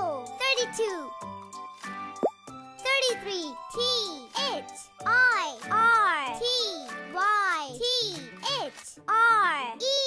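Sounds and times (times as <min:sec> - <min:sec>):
high child-like voice speaking: 0:00.0 - 0:01.2, 0:02.8 - 0:10.0
bright children's music: 0:00.0 - 0:10.0.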